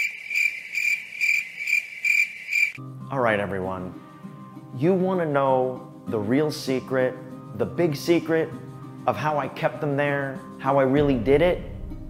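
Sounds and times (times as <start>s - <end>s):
cricket trilling: 0.0s - 2.8s.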